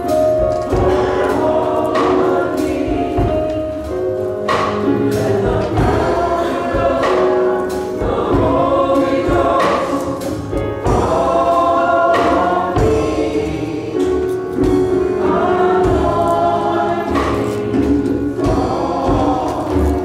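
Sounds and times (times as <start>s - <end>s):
low instrumental accompaniment: 0.0s - 20.0s
youth choir singing gospel: 0.0s - 20.0s.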